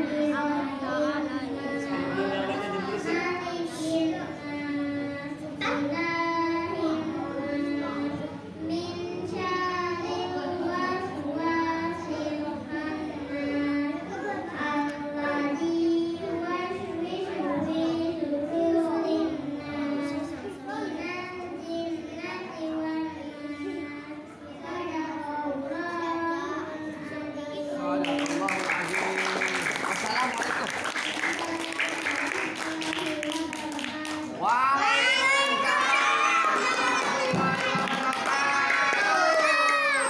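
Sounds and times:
girl reciting in melodic style: 0.0s - 28.9s, 30.8s - 40.0s.

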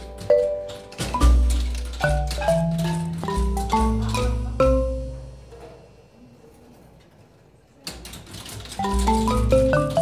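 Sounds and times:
marimba notes: 0.0s - 5.5s, 8.8s - 10.0s.

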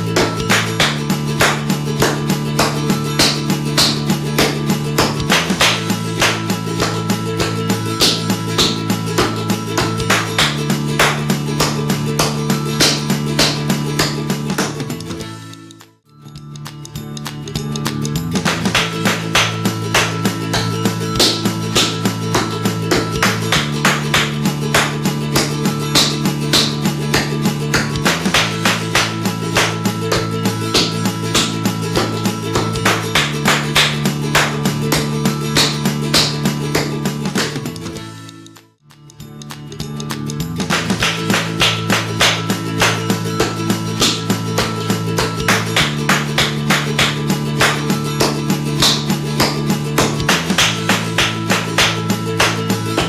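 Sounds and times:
guitar backing music: 0.0s - 53.0s.

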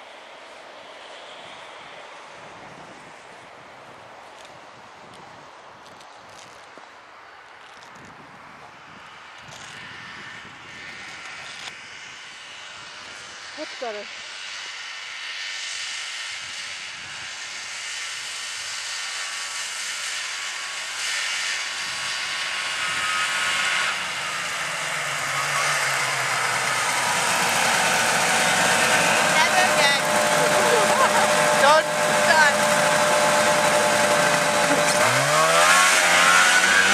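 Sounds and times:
snowmobile engine running: 12.6s - 14.1s, 16.5s - 36.9s.

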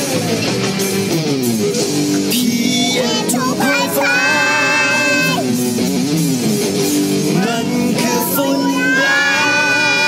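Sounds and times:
backing music: 0.0s - 10.0s
child singing: 2.6s - 5.5s, 7.5s - 10.0s.

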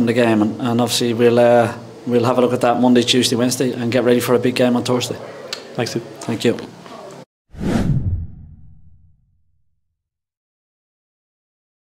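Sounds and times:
whoosh: 7.5s - 9.4s
deep rumble: 7.6s - 9.4s.

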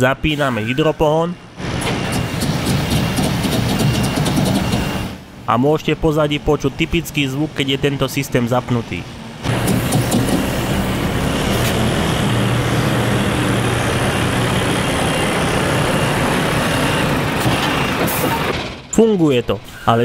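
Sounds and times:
heavy truck hydraulic drive whirring: 1.5s - 5.3s, 9.4s - 19.0s.

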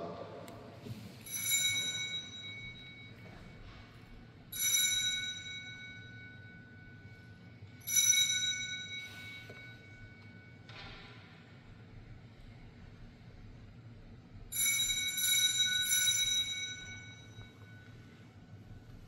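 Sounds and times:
altar bell ringing: 1.2s - 11.3s, 14.4s - 19.0s.

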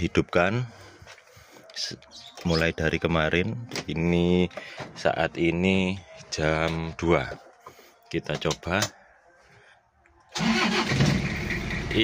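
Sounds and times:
starter motor cranking: 10.4s - 11.4s.

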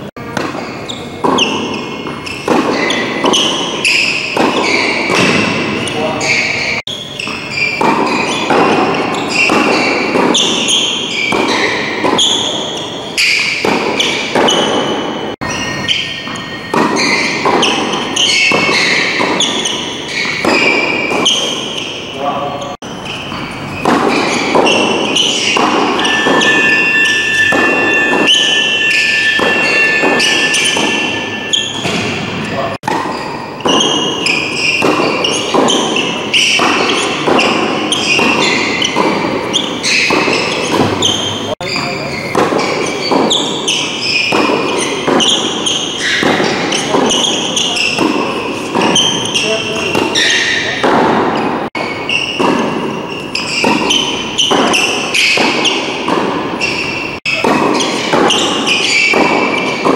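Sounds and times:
tennis racquet strikes: 0.2s - 22.2s, 22.8s - 59.9s
ball bouncing on court: 0.3s - 22.0s, 22.8s - 59.9s.

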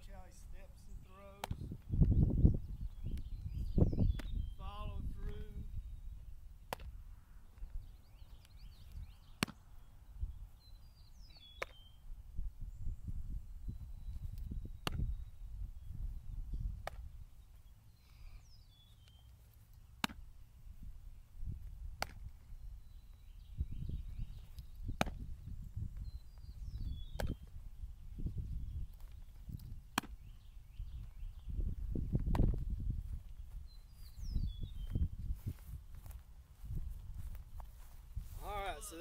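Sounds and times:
wind buffeting microphone: 0.0s - 9.3s, 10.0s - 11.3s, 12.1s - 17.4s, 20.6s - 39.0s
birds chirping: 0.0s - 21.6s, 22.3s - 39.0s
baseball smacking into gloves: 1.4s - 2.2s, 4.1s - 4.4s, 6.7s - 7.0s, 9.3s - 9.6s, 11.6s - 11.8s, 14.3s - 15.2s, 16.8s - 17.1s, 20.0s - 20.3s, 21.9s - 22.3s, 24.5s - 25.3s, 27.1s - 27.5s, 29.0s - 30.2s, 32.1s - 32.6s.

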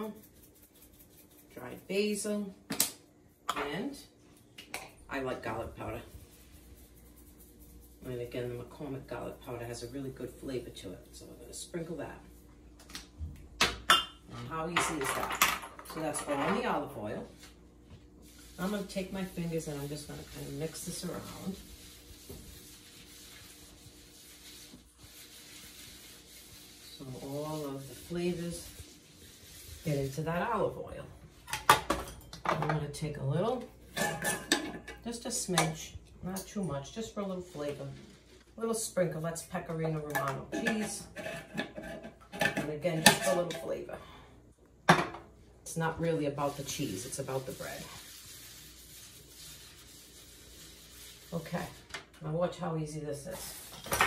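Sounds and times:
fingertips rubbing metal baking sheet: 0.0s - 1.6s, 18.3s - 30.7s, 46.3s - 51.9s.

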